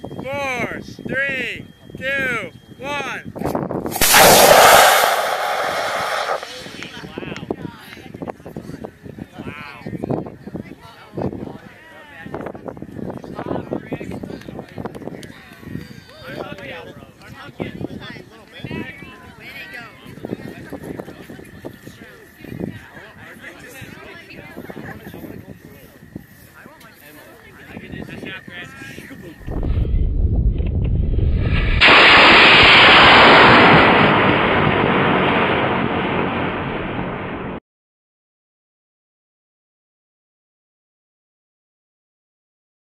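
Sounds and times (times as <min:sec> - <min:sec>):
rocket motor hissing: 0:03.9 - 0:07.1
rocket motor rushing roar: 0:03.9 - 0:07.1, 0:30.9 - 0:36.4
low rumble: 0:29.4 - 0:37.6.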